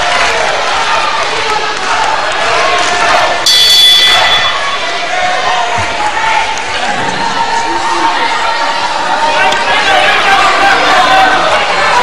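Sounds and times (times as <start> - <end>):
crowd voices in hall: 0.0 - 12.0
ring bell: 3.5 - 4.8.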